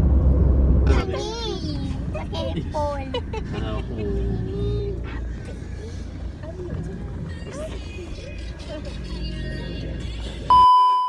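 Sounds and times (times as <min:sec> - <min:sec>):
low rumble inside car: 0:00.0 - 0:10.7
faint voices: 0:00.9 - 0:10.5
steady test tone beep: 0:10.5 - 0:11.0.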